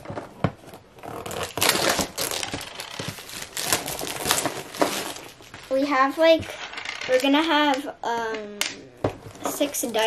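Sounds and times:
plastic wrap crinkling: 1.0 - 7.2.

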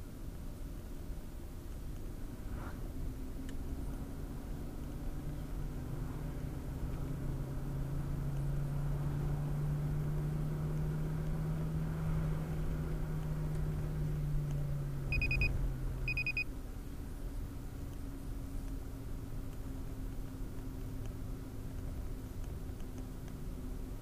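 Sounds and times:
car engine and tyre noise: 0.0 - 24.0
high electronic beeps: 15.1 - 15.5, 16.1 - 16.5.

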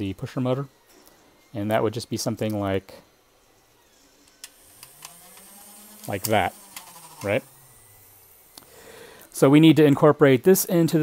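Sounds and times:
electric motor hum rising in pitch: 0.0 - 10.1
thin high whine: 0.0 - 11.0.

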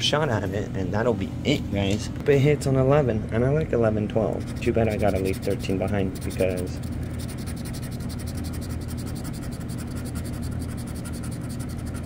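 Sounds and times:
scratch-off ticket being scraped: 4.4 - 12.0.

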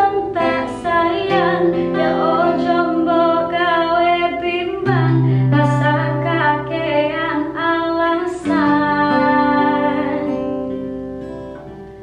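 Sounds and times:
woman singing: 0.0 - 10.8
acoustic guitar: 0.0 - 12.0.

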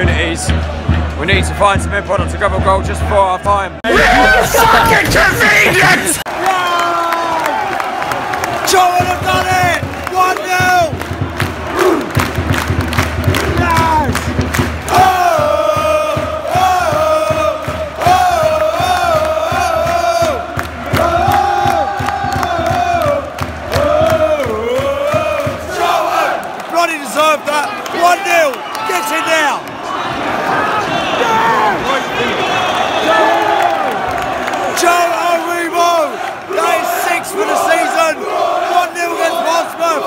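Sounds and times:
crowd cheering and shouting: 0.0 - 40.0
crowd singing a chant: 3.9 - 6.2, 14.9 - 26.6, 36.0 - 40.0.

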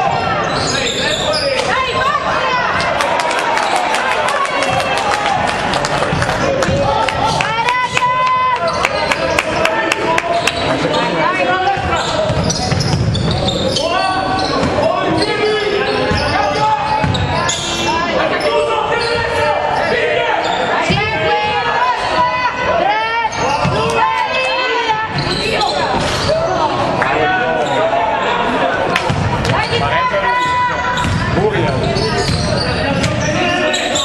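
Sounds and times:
players shouting: 0.0 - 34.0
sneaker squeaks: 0.4 - 1.9, 10.3 - 21.1, 25.0 - 26.4, 29.1 - 34.0.

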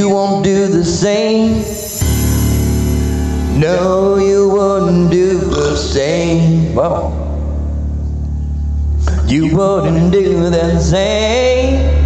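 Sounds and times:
instrumental backing track: 1.0 - 12.0.

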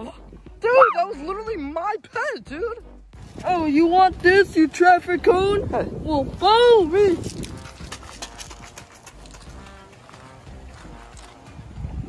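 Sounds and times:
running footsteps on gravel: 6.8 - 12.0.

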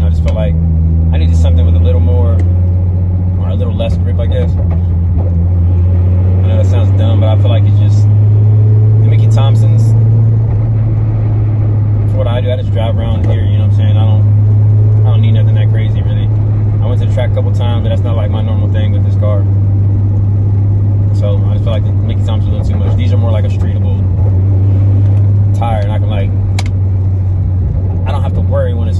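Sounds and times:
car cabin drone: 0.0 - 28.9.

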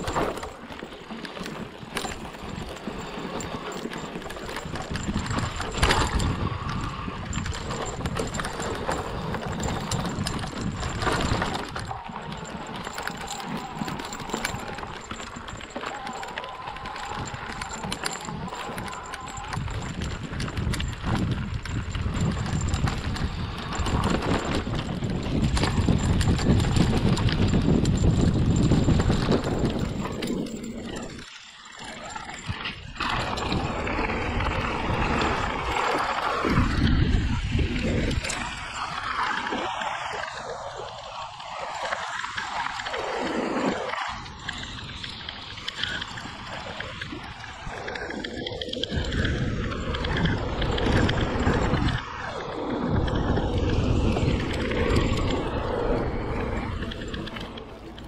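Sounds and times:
tyres rolling on dirt trail: 0.0 - 58.0
wind rushing over microphone: 0.0 - 58.0.

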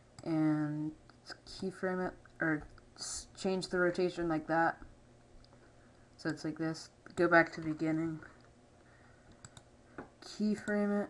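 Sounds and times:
computer clicks: 9.3 - 9.7.

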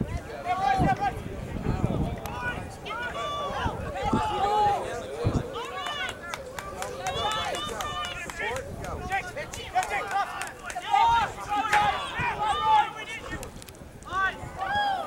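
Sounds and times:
voices shouting: 0.0 - 15.0.

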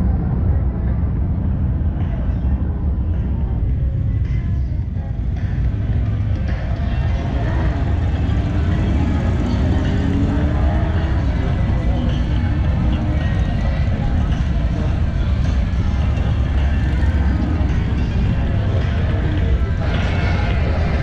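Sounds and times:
low rumble: 0.0 - 21.0
people's voices: 0.0 - 21.0
motorcycle engines revving: 1.8 - 21.0.

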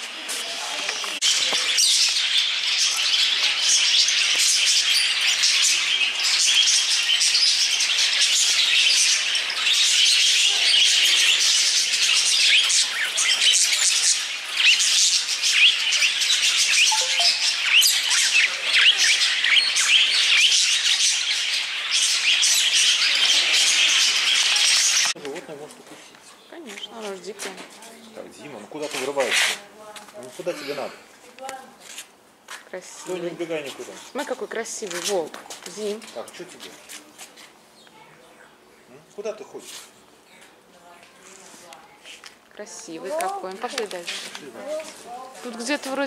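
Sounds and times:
small parrots chirping and chattering: 0.1 - 32.1, 32.9 - 46.0.

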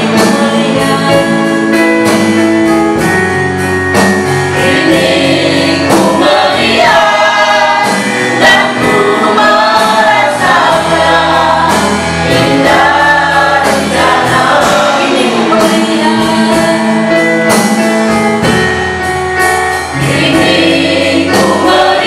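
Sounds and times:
group singing worship song: 0.0 - 3.2, 3.9 - 18.6, 19.8 - 22.0
electronic keyboard chords: 0.0 - 22.0.

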